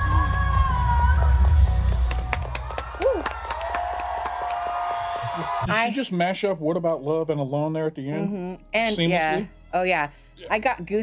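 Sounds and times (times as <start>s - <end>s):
crowd cheering and applauding: 0.0s - 5.9s
whoop: 2.5s - 5.7s.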